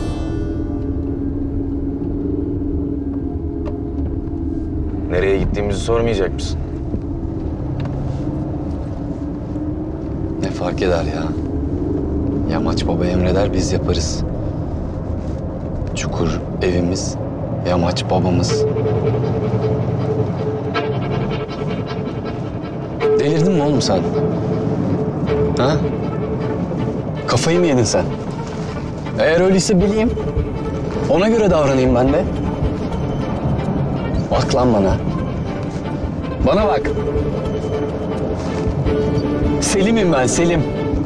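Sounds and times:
held low tone: 0:00.0 - 0:16.6, 0:28.0 - 0:41.0
car driving rumble: 0:00.0 - 0:41.0
constant hum: 0:00.0 - 0:41.0.

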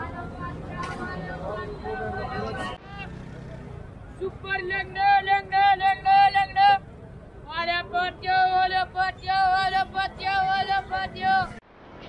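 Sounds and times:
men's voices: 0:00.0 - 0:11.6
low traffic hum: 0:00.0 - 0:12.0.

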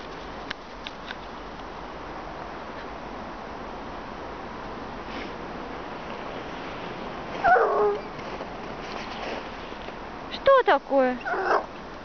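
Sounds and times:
dog whining yelp: 0:07.4 - 0:08.1, 0:11.2 - 0:11.7.

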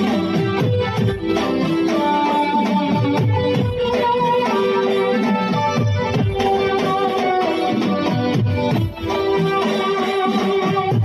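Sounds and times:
held melody line: 0:00.0 - 0:11.0
repeating drum pattern: 0:00.0 - 0:11.0.

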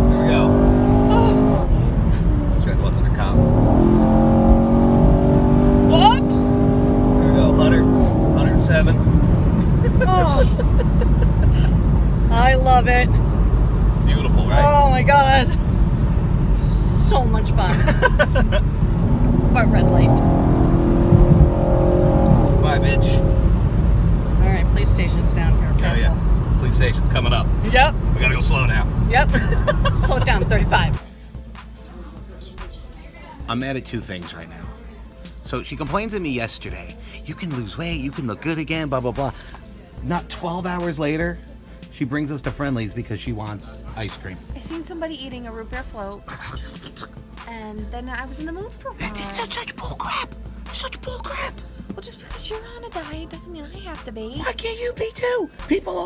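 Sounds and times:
car engine accelerating hard: 0:00.0 - 0:31.8
road rumble: 0:00.0 - 0:56.0
people exclaiming and laughing: 0:09.6 - 0:12.0, 0:29.2 - 0:31.0.

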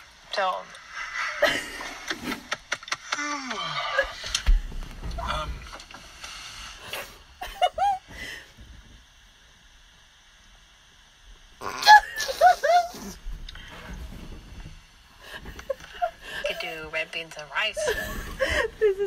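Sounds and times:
person laughing squealing: 0:07.4 - 0:08.1, 0:11.6 - 0:13.2.

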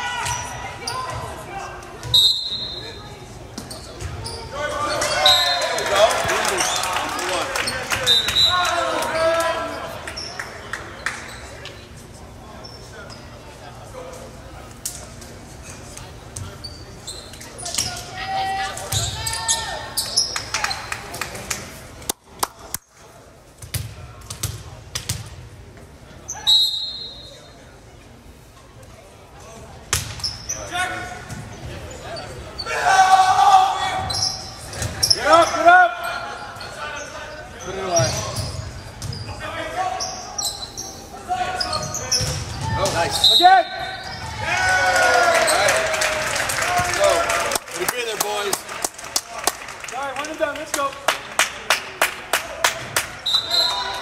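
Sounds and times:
referee's whistle: 0:02.1 - 0:03.0, 0:08.0 - 0:08.7, 0:26.3 - 0:27.5, 0:43.1 - 0:44.2, 0:53.2 - 0:54.0.

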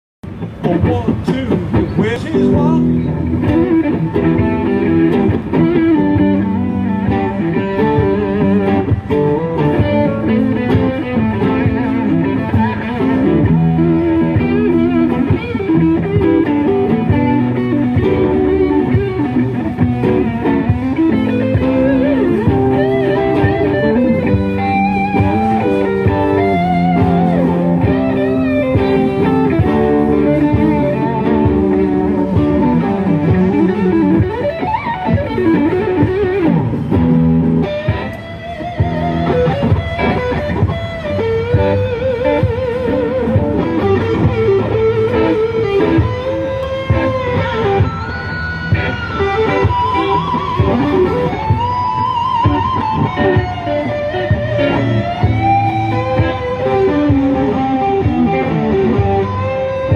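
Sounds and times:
electric guitars jamming: 0:00.2 - 0:59.9.

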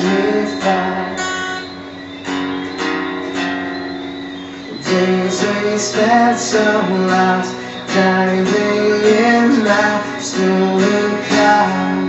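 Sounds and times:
guitar strumming chords: 0:00.0 - 0:12.0.

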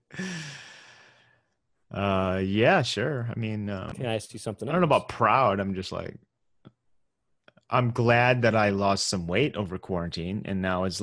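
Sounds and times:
man sighing: 0:00.0 - 0:01.2.

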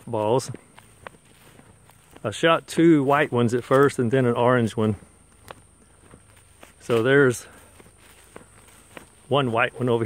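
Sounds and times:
footsteps on grass and dirt: 0:00.0 - 0:10.0.

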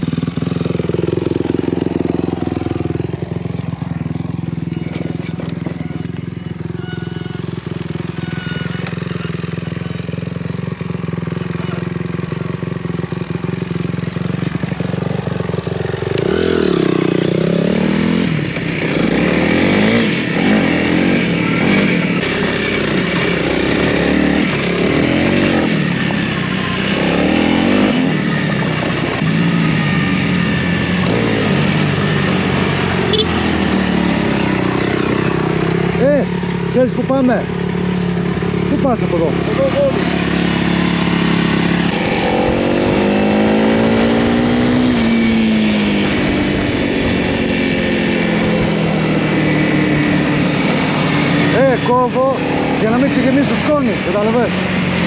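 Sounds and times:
motorcycle engine idling and revving: 0:00.0 - 0:55.0.

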